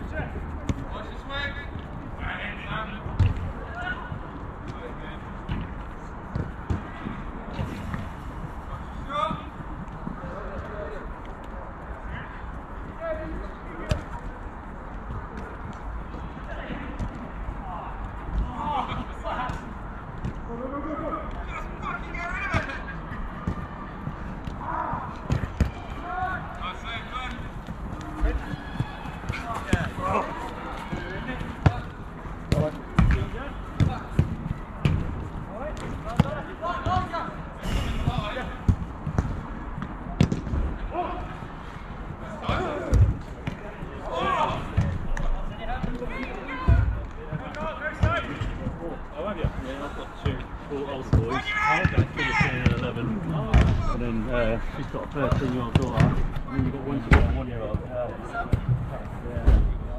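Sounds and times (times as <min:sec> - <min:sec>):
players shouting: 0:16.0 - 0:38.7, 0:39.4 - 0:57.6
ball being kicked: 0:32.5 - 0:37.1, 0:51.1 - 0:52.9.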